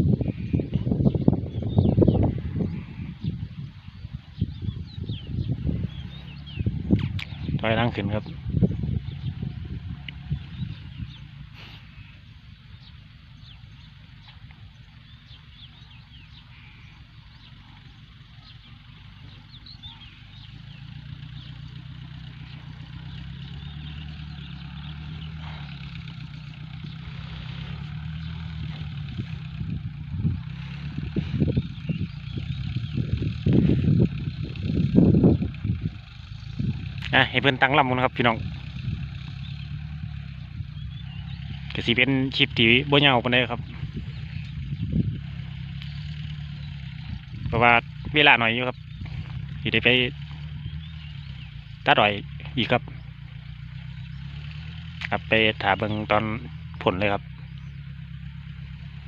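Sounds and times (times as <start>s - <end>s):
tractor engine running: 0.0s - 59.0s.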